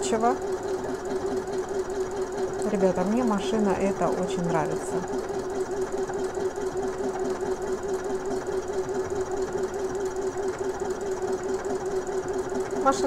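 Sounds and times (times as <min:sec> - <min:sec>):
sewing machine motor hum: 0:00.0 - 0:13.0.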